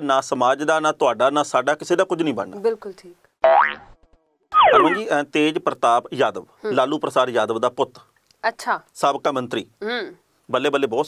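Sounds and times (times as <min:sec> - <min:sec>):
cartoon sliding tone: 0:04.6 - 0:05.1.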